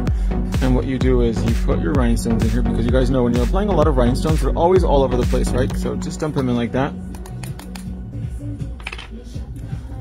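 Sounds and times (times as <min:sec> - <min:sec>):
background music: 0:00.0 - 0:10.0.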